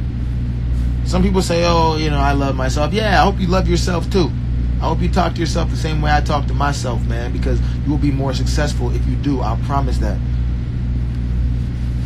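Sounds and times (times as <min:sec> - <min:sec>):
deep even hum: 0:00.0 - 0:12.0.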